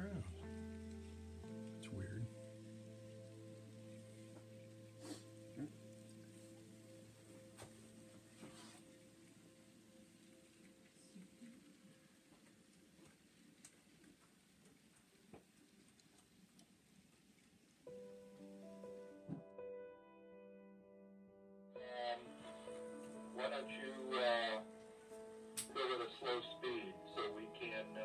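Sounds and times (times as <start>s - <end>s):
faint low hum: 0.0s - 19.0s
faint clicks: 10.2s - 18.4s.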